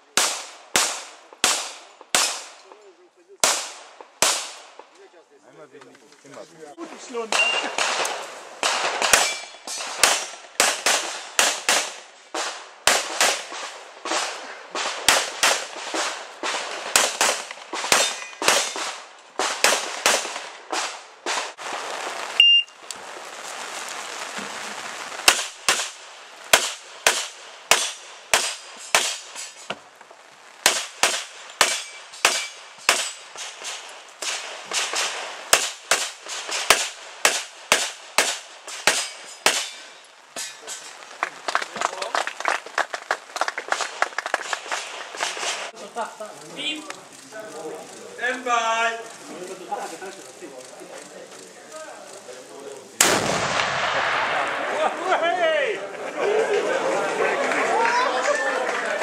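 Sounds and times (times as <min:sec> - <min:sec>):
rapid pistol shots: 0:00.1 - 0:02.6, 0:03.4 - 0:04.8, 0:07.3 - 0:21.6, 0:25.2 - 0:29.5, 0:30.6 - 0:39.9, 0:53.0 - 0:54.4.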